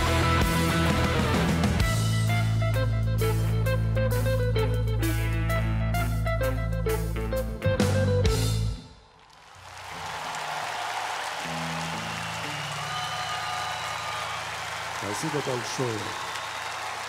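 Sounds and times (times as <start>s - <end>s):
rock band playing: 0.0s - 8.9s
audience applause: 9.2s - 17.0s.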